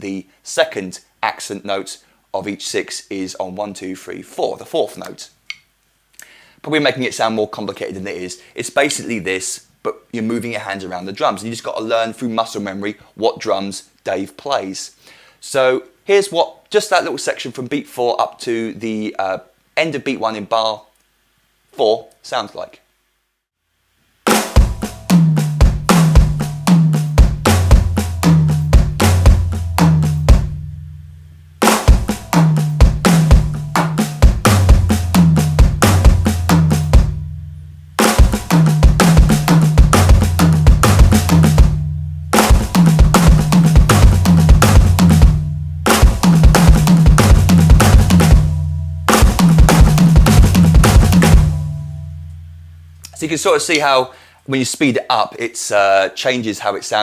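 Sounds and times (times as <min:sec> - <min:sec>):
electronic drum kit playing: 0:24.3 - 0:53.0.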